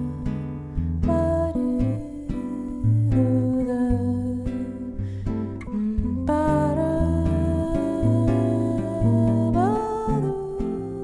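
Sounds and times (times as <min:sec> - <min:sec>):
soft jazz on guitars: 0:00.0 - 0:11.0.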